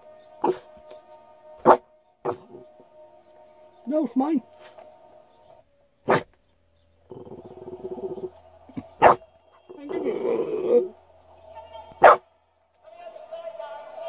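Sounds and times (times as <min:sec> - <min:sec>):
dog barking: 0:00.4 - 0:00.7, 0:01.6 - 0:02.6, 0:06.0 - 0:06.4, 0:08.8 - 0:09.2, 0:12.0 - 0:12.2.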